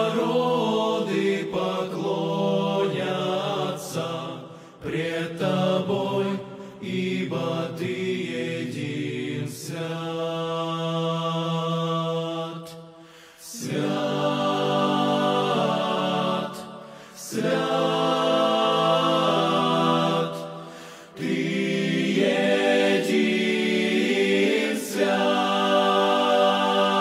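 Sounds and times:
male choir singing a hymn: 0.0 - 27.0.

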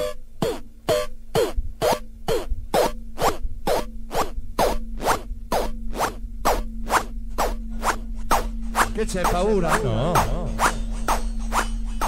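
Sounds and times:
steady low drone: 0.8 - 12.0
electronic dance music: 8.3 - 11.7.

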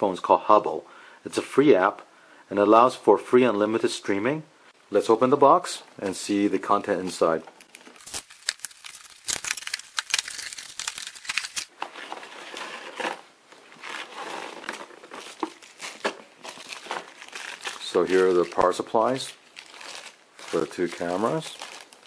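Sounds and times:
cardboard crinkling and rustling: 6.9 - 22.0
plastic wrapping rustling: 6.9 - 22.0.

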